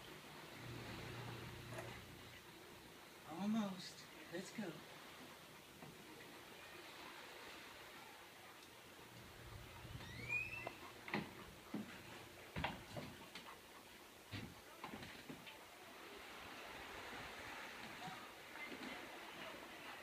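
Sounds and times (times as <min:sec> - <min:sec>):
knocks and clunks in a boat: 0:09.6 - 0:13.5
short rising squeak: 0:10.0 - 0:10.8.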